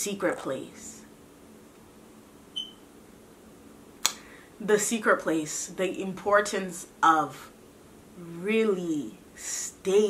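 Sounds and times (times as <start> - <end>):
faint steady hum: 0.0 - 10.0
high-pitched chirp: 2.6 - 2.8.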